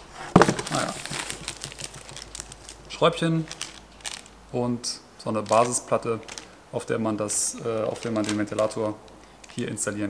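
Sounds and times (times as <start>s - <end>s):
plastic bag of screws crinkling: 0.3s - 4.4s, 5.4s - 6.6s, 7.8s - 9.8s.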